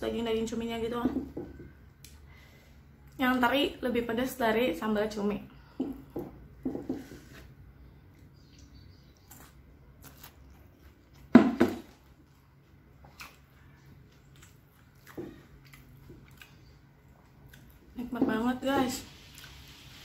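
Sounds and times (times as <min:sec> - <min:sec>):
person chewing food: 0:08.0 - 0:18.0, 0:19.2 - 0:20.0.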